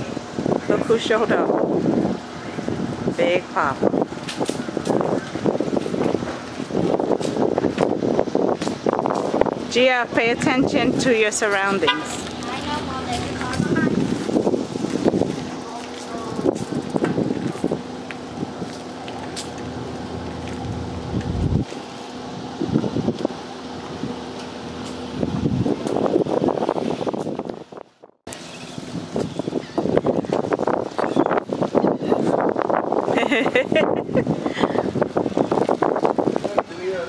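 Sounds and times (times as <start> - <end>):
wind noise on microphone: 0.0 - 37.0.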